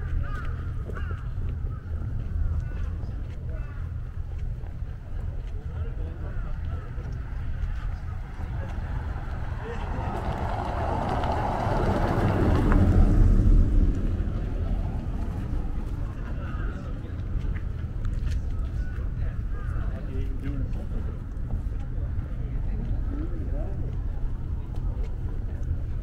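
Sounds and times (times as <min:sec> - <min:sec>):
steady low rumble: 0:00.0 - 0:26.0
car driving past: 0:07.1 - 0:17.1.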